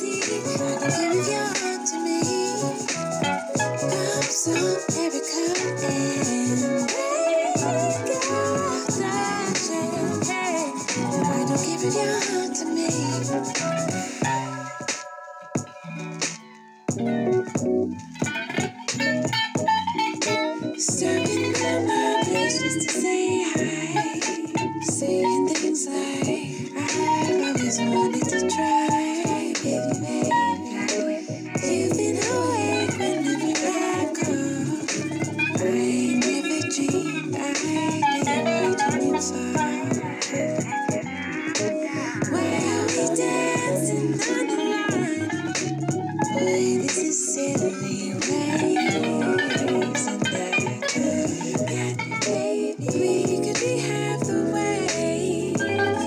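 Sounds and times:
electric guitar: 0.0s - 56.0s
neo-soul song with bass: 0.0s - 56.0s.

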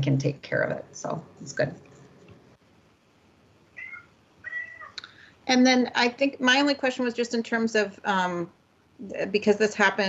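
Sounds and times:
cat meowing: 3.8s - 5.0s.

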